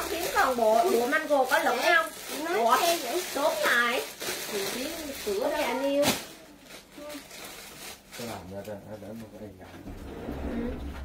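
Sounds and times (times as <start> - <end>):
woman speaking: 0.0 - 6.1.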